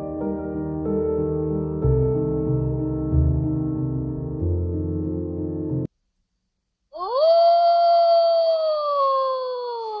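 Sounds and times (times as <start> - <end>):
wolf howling: 7.0 - 10.0.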